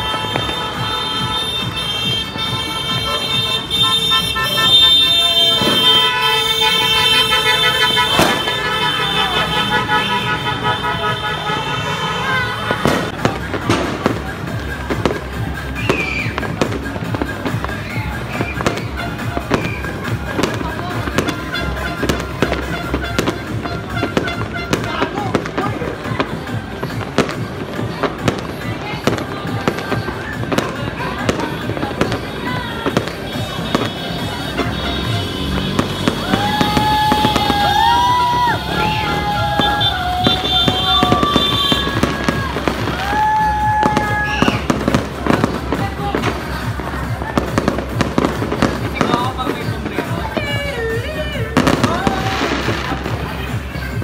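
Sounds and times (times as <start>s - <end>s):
horn blaring: 0.0s - 14.0s, 18.6s - 26.0s, 32.2s - 43.1s
fireworks popping and banging: 0.0s - 54.0s.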